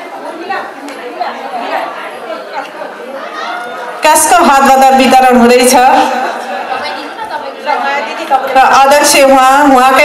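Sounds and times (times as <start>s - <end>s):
voices chattering in a hall: 0.0s - 10.0s.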